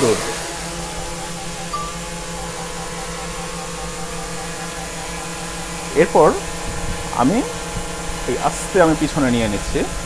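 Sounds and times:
drone propellers humming: 0.0s - 10.0s.

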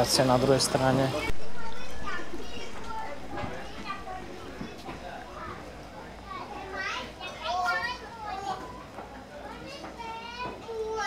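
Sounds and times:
children playing and calling out: 1.2s - 11.0s.

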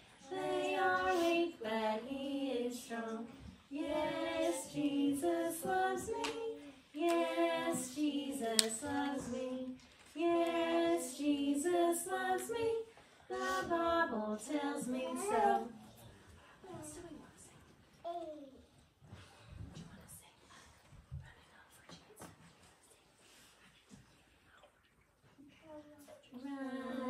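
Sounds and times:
children singing unaccompanied: 0.2s - 15.8s.

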